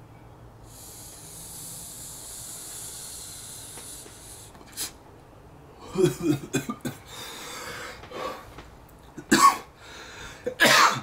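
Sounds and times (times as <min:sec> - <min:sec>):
hiss of air through vape: 0:00.6 - 0:05.0
short sharp breath: 0:00.6 - 0:05.0.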